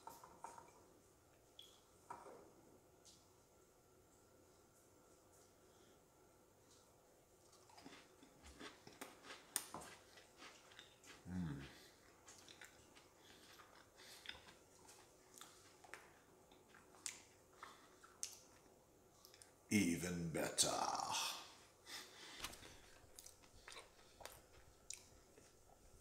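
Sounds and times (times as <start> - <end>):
cookie chewing crunches: 7.4 - 19.6, 22.3 - 25.9
person humming low: 11.3 - 11.8.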